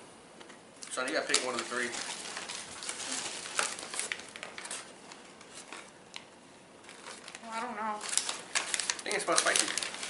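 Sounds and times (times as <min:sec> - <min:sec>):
paper sandwich bags crinkling: 0:00.9 - 0:10.0.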